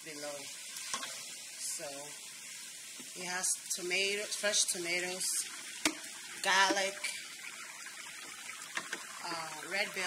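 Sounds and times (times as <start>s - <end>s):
oil sizzling and bubbling in a pot: 0.0s - 10.0s.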